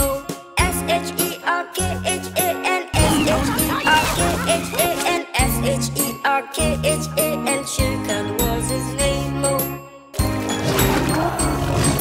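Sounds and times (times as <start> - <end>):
children's song with singing: 0.0 - 10.2.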